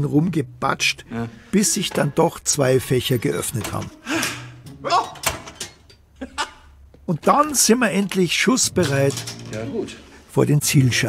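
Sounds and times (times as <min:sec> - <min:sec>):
machine doors clicking and sliding: 0:02.9 - 0:06.0, 0:07.3 - 0:10.2.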